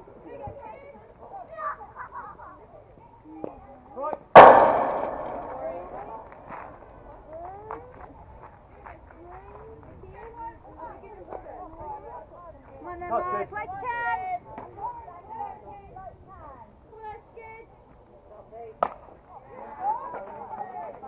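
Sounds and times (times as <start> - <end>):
ball hitting chain-link fence: 4.4 - 6.7.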